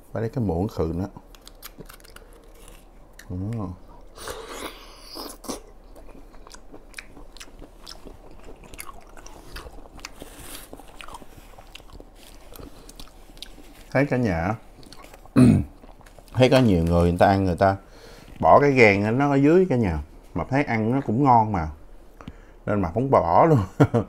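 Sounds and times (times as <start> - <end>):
man chewing: 1.2 - 14.0, 14.6 - 16.4.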